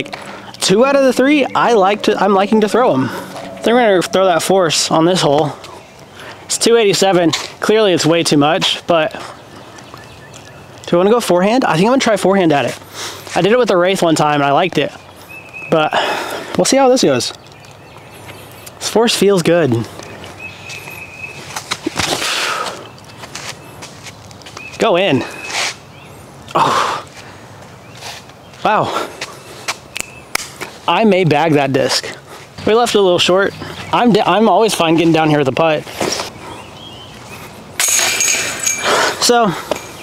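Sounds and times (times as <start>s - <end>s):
bag rustling with light clinks: 37.8s - 40.0s.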